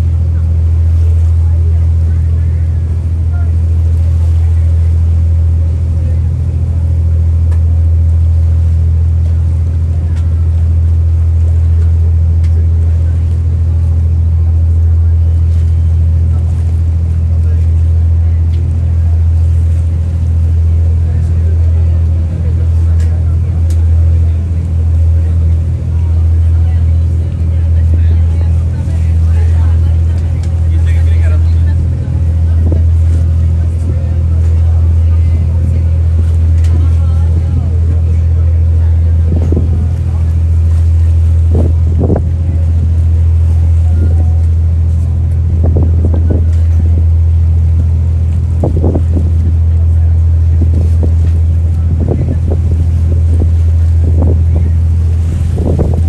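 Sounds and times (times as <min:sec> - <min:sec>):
ferry engine low drone: 0:00.0 - 0:56.0.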